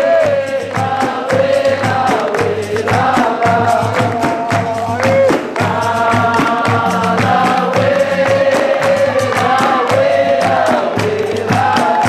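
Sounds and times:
group singing in chorus: 0.0s - 12.0s
hand drum and percussion beat: 0.0s - 12.0s.

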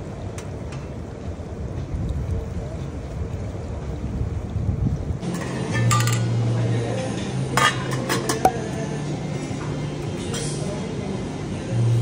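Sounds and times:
metal pot lid clinking: 5.3s - 6.4s.

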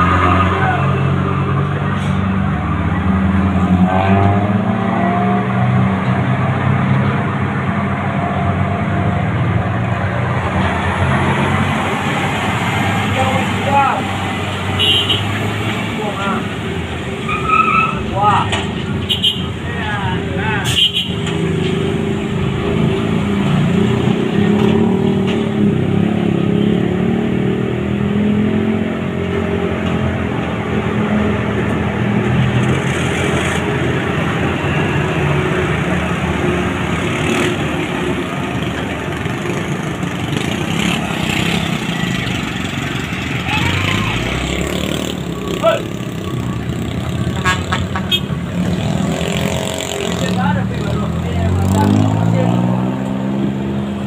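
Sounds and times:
car and motorcycle engines: 0.0s - 54.0s
diesel truck engines labouring: 0.0s - 54.0s.

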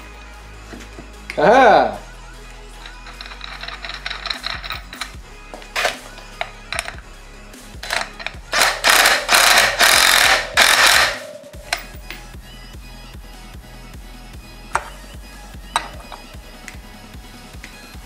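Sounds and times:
background music: 0.0s - 18.0s
power driver spinning: 2.8s - 5.2s, 7.8s - 12.2s.

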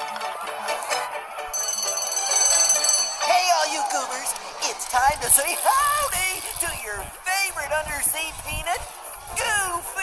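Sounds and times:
light background music: 0.0s - 10.0s
clock bell ringing: 1.5s - 4.0s.

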